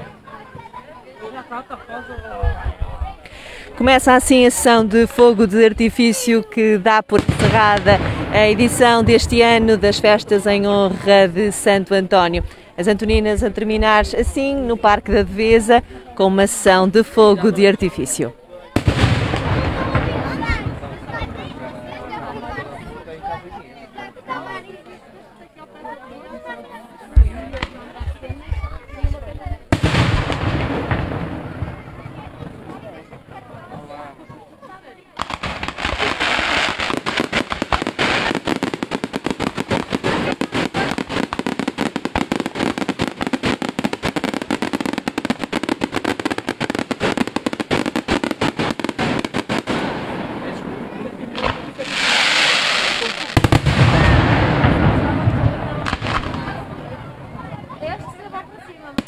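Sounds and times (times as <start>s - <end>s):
firework bangs: 6.9s - 11.5s, 18.8s - 22.1s, 29.7s - 33.8s, 35.2s - 58.0s
firework crackling and popping: 7.1s - 10.6s, 18.8s - 21.8s, 29.7s - 32.9s, 35.2s - 57.1s
low firework booms: 7.1s - 10.7s, 18.8s - 22.1s, 27.2s - 33.8s, 35.2s - 58.2s.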